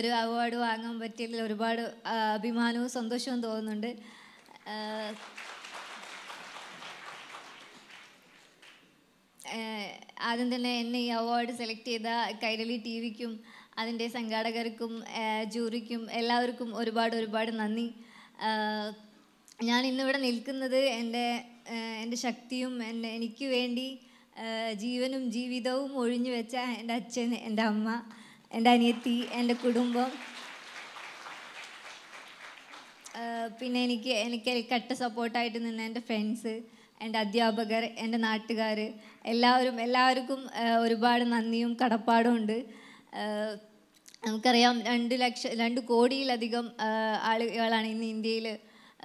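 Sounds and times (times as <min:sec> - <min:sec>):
audience applauding: 0:05.0 - 0:08.9, 0:28.9 - 0:33.2.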